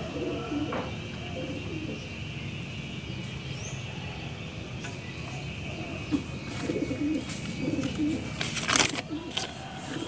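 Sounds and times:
dove cooing: 0.0s - 2.3s, 3.8s - 10.0s.

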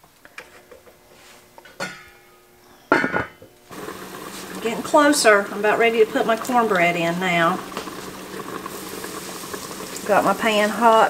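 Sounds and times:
metal clanks on cooking pot: 1.7s - 2.2s, 2.9s - 3.4s
steady hiss: 3.7s - 11.0s.

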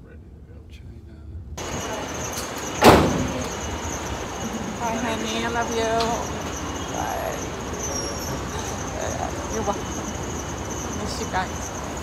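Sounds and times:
steady high hiss: 1.0s - 12.0s
roadside traffic noise: 1.6s - 12.0s
sharp thump: 2.8s - 3.5s.

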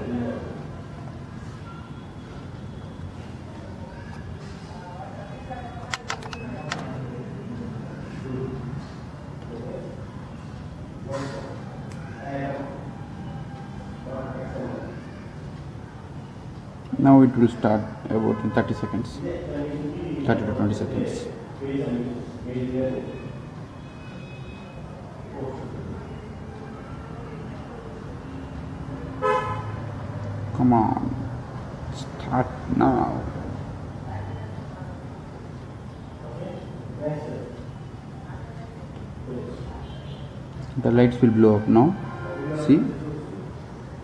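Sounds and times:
low background murmur: 0.0s - 44.0s
sharp clicks: 5.8s - 6.9s.

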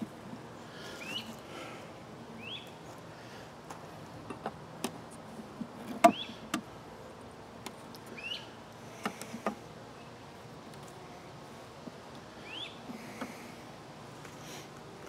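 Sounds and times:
honeybees humming: 0.0s - 4.5s, 5.2s - 15.0s.

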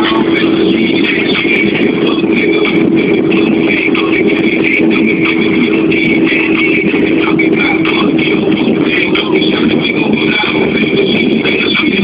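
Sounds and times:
car engine and tyre drone: 0.0s - 12.0s.

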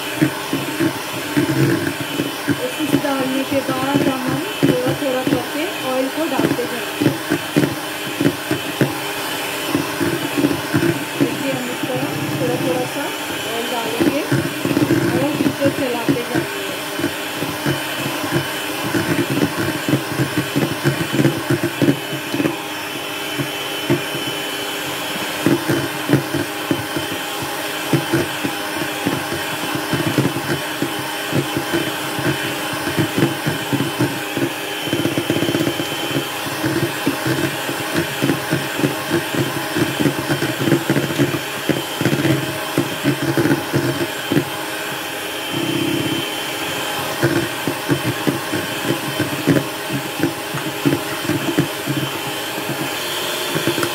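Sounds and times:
electric hand mixer running: 0.0s - 53.9s.

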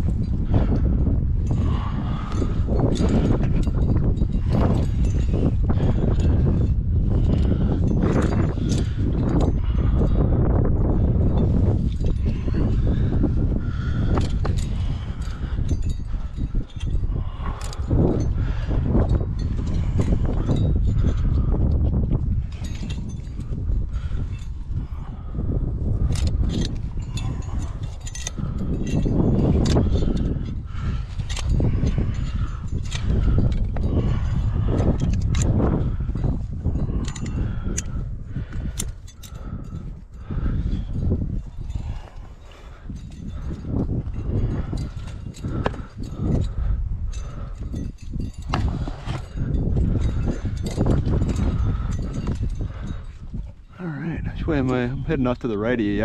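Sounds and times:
climbing gear clinking: 0.0s - 56.0s.

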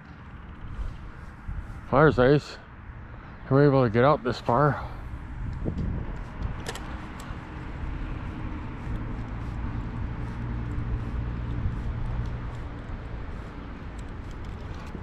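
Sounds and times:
low rumble with faint hum: 0.0s - 15.0s.

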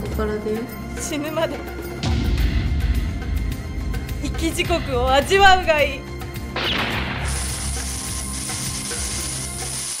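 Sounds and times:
dark trailer music: 0.0s - 8.8s
crackling electric sparks: 6.6s - 10.0s.

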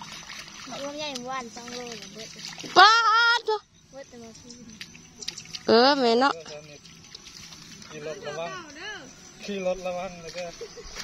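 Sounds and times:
faint water splashing: 0.0s - 11.0s.

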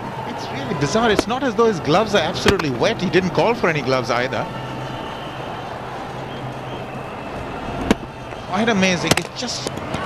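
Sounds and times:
stadium crowd noise: 0.0s - 10.0s
cricket bat striking ball: 1.1s - 1.3s, 2.4s - 2.7s, 9.0s - 10.0s.

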